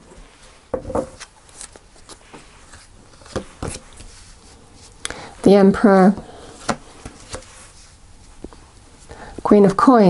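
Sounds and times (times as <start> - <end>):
faint card handling: 1.2 - 5.1.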